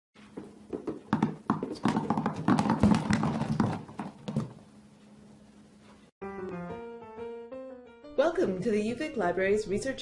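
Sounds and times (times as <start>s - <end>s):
apples dropping and bouncing: 0.3s - 4.6s.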